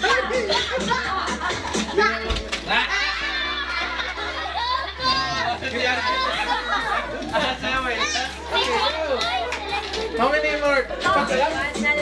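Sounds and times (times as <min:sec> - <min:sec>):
adults chattering: 0:00.0 - 0:12.0
children shouting while playing: 0:04.4 - 0:07.1, 0:07.8 - 0:09.8.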